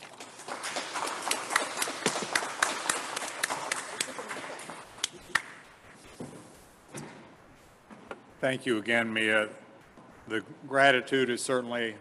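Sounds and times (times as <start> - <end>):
hands clapping: 0.0 - 5.8.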